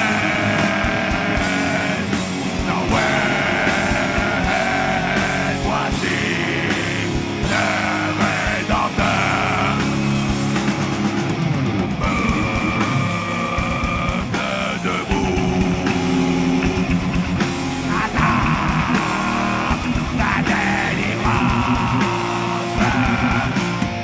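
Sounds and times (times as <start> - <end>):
voices singing held notes: 0.0 - 10.4, 12.0 - 24.0
distorted electric guitars: 0.0 - 24.0
drums: 0.0 - 24.0.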